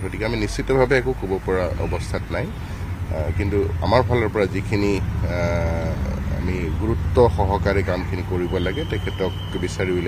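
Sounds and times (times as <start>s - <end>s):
drawn-out steady call: 0.0s - 10.0s
man speaking: 0.0s - 10.0s.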